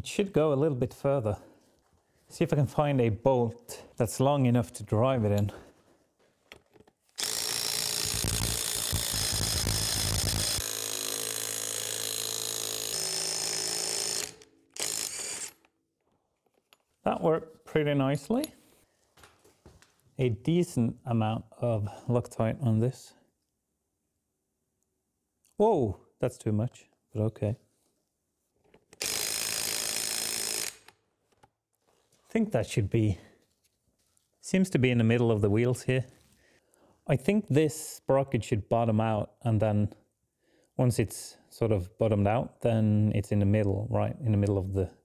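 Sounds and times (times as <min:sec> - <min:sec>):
power tool driving a bolt: 0:07.2 - 0:15.7, 0:28.9 - 0:31.0.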